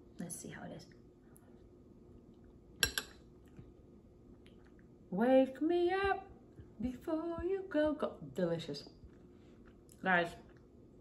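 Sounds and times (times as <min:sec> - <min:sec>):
metal spoon clinking ceramic bowl: 0:02.8 - 0:03.2.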